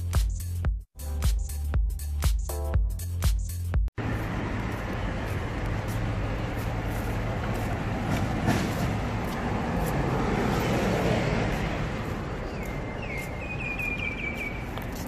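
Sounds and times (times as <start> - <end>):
road traffic noise: 3.0 - 15.0
footsteps on stone paving: 3.9 - 15.0.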